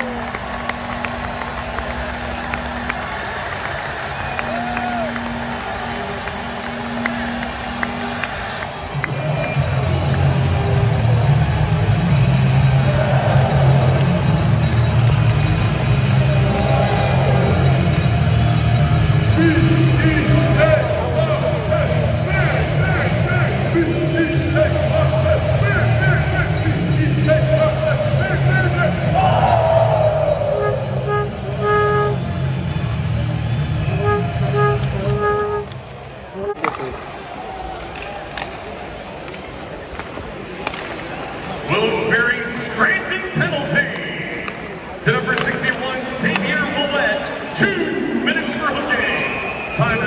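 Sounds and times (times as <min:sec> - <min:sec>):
music over arena loudspeakers: 0:00.0 - 0:37.3, 0:39.8 - 0:50.0
arena crowd noise: 0:00.0 - 0:50.0.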